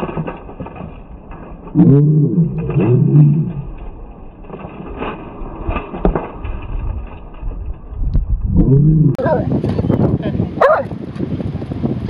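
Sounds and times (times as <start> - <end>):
low rumble: 0.0 - 12.0
deep stretched-out voice: 8.5 - 9.5.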